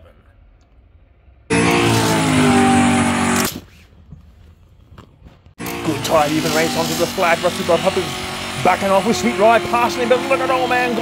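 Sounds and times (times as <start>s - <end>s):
race car engine revving: 1.5s - 3.6s, 5.6s - 11.0s.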